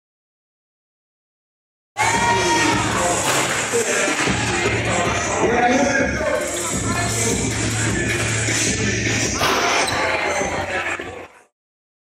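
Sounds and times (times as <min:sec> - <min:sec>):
crowd noise echoing in hall: 0:02.0 - 0:11.5
ball hitting basketball rim: 0:09.4 - 0:10.0.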